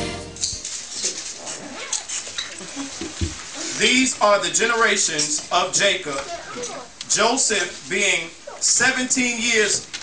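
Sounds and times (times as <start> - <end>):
crackly background noise: 0.4 - 10.0.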